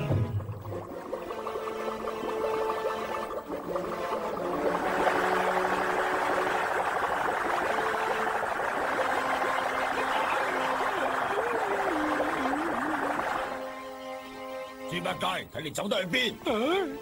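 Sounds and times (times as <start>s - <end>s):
soft orchestral music: 13.4s - 17.0s.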